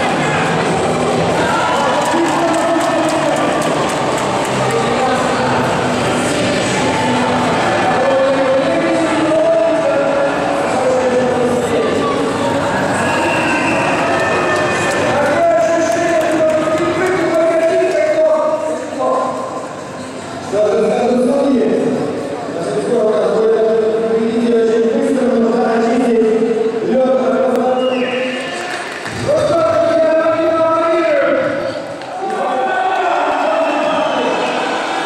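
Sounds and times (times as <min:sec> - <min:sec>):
arena crowd noise: 0:00.0 - 0:35.0.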